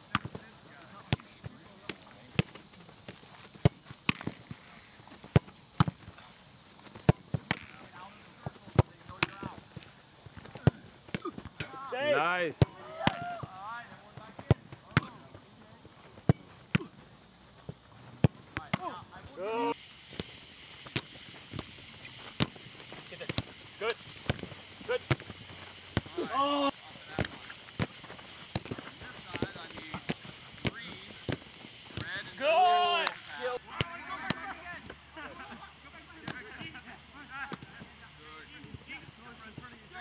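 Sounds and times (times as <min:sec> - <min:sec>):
soccer ball kick thumps: 0:00.1 - 0:06.2, 0:06.8 - 0:11.8, 0:12.5 - 0:15.4, 0:16.1 - 0:17.0, 0:17.6 - 0:19.4, 0:20.1 - 0:26.4, 0:27.1 - 0:32.4
short shouts: 0:11.2 - 0:13.7, 0:26.1 - 0:26.8, 0:32.4 - 0:33.2.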